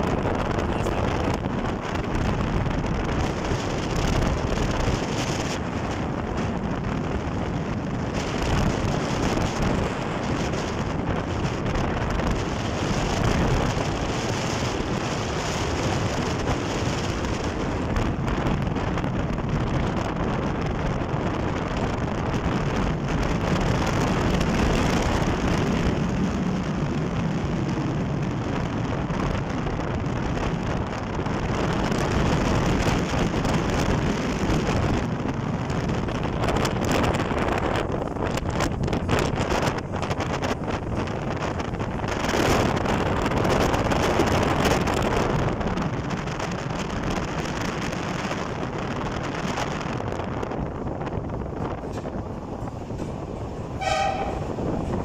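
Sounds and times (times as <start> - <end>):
vehicle road noise: 0.0 - 55.0
short horn toot: 53.8 - 54.6.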